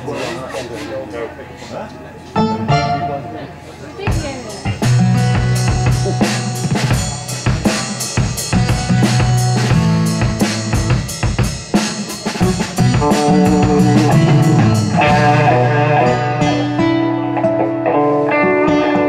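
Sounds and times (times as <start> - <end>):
live rock band playing: 2.4 - 19.0.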